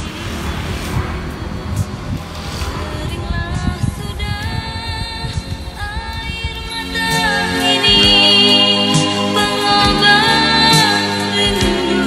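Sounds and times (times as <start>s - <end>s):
motor scooter passing: 0.0s - 8.8s
background pop music: 5.2s - 12.0s.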